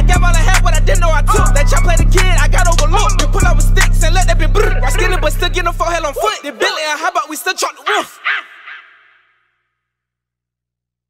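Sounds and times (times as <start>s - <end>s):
rapped vocal with echo: 0.0s - 9.5s.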